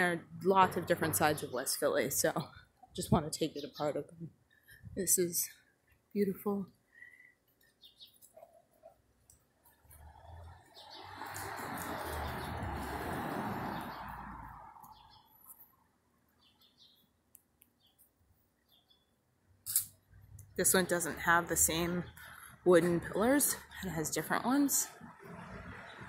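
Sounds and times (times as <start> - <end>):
vehicle passing on street: 0.0 - 2.2, 9.6 - 16.1, 20.2 - 26.0
faint bird chirps: 6.8 - 9.0.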